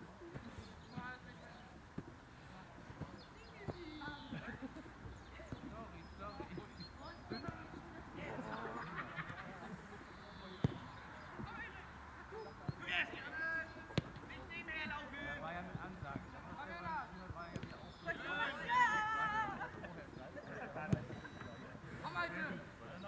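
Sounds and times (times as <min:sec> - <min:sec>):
football being kicked: 0:10.6 - 0:11.8, 0:13.9 - 0:14.3
players shouting: 0:17.9 - 0:19.8.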